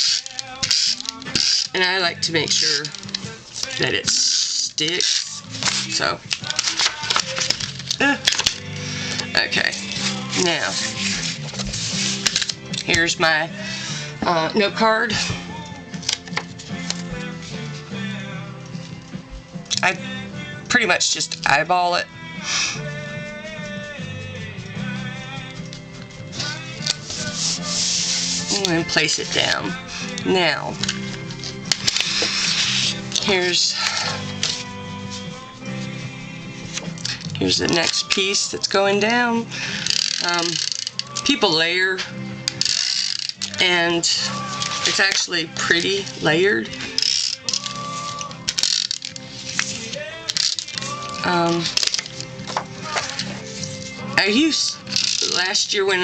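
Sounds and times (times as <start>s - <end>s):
tape runner ratcheting: 0.0s - 13.0s, 39.7s - 41.4s, 42.4s - 43.8s, 46.8s - 55.7s
soft background music: 0.0s - 56.0s
paper rubbing and sliding: 8.8s - 12.6s, 23.2s - 30.2s, 31.0s - 38.1s, 47.0s - 54.1s.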